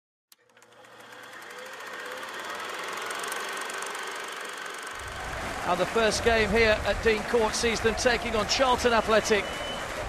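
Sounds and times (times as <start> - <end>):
film projector clattering: 0.3 - 5.0.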